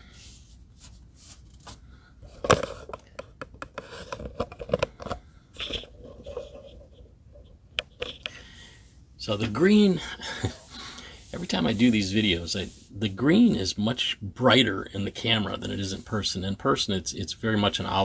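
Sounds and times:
hands clicking and scraping plastic: 0:01.6 - 0:07.0, 0:07.7 - 0:08.4.

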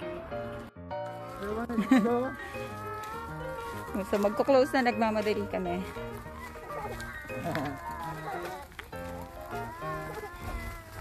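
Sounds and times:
background music with held notes: 0:00.0 - 0:11.0
farm animal bleating: 0:01.1 - 0:11.0.

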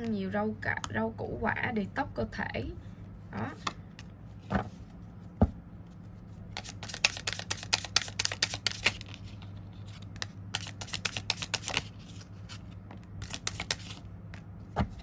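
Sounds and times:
cards being shuffled: 0:06.0 - 0:14.5.

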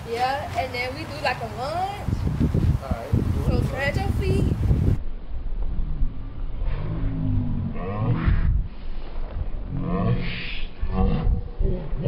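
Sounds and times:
wind noise on microphone: 0:00.0 - 0:12.0
drawn-out low voice: 0:09.6 - 0:12.0.

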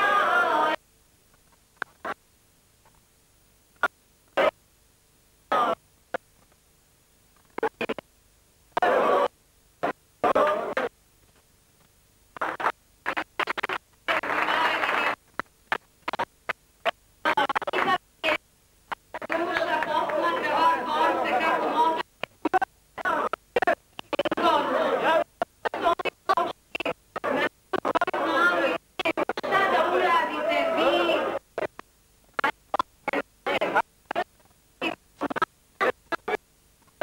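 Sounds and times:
people talking: 0:00.0 - 0:00.8, 0:10.2 - 0:10.9, 0:14.1 - 0:15.2, 0:17.3 - 0:18.4, 0:19.2 - 0:31.4, 0:33.1 - 0:34.2, 0:34.8 - 0:35.4
scratchy garbled tape noise: 0:00.0 - 0:02.2, 0:03.8 - 0:04.6, 0:05.5 - 0:06.7, 0:07.3 - 0:37.0.

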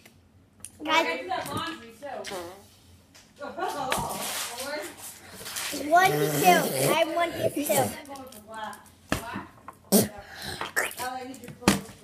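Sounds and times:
children's muffled vocal sounds: 0:05.6 - 0:08.1.

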